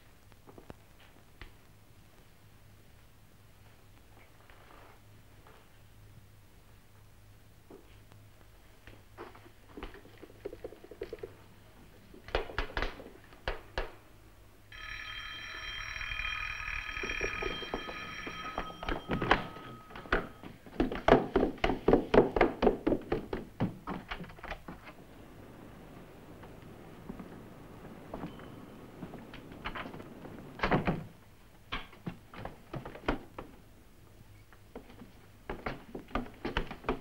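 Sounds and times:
electric doorbell ringing: 0:14.7 - 0:20.5.

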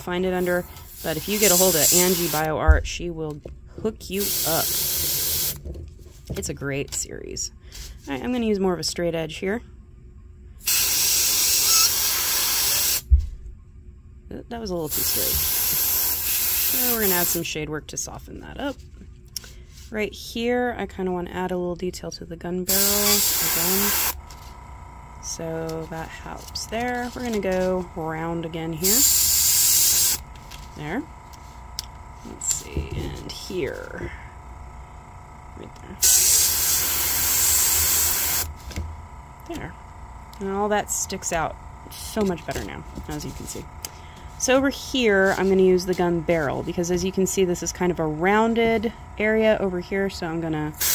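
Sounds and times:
airbrush hissing air: 0:00.3 - 0:02.5, 0:04.2 - 0:05.6, 0:10.6 - 0:13.0, 0:14.9 - 0:17.4, 0:22.7 - 0:24.2, 0:28.8 - 0:30.2, 0:36.0 - 0:38.6.

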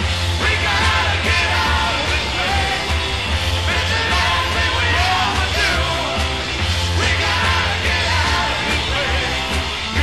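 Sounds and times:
hard rock band playing: 0:00.0 - 0:10.0.

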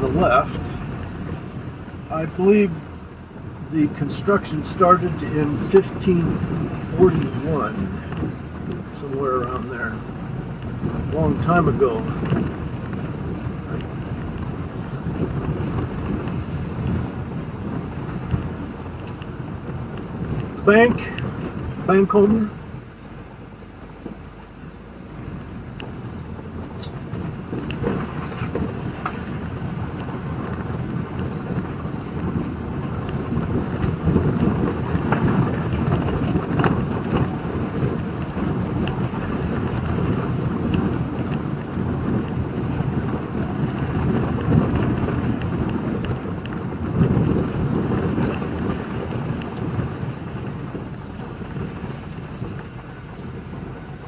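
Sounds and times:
tyre and road noise: 0:00.0 - 0:54.0.

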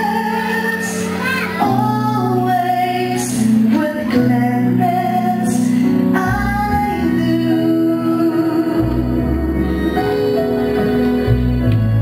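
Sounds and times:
woman singing slow song: 0:00.0 - 0:10.2
instrumental accompaniment: 0:00.0 - 0:12.0.

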